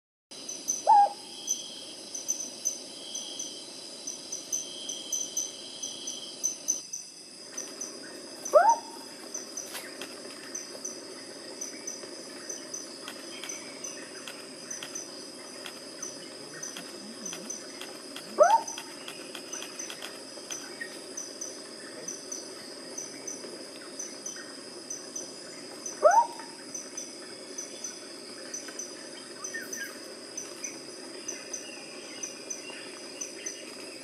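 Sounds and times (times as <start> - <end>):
crickets and insects chirping: 0.3 - 34.0.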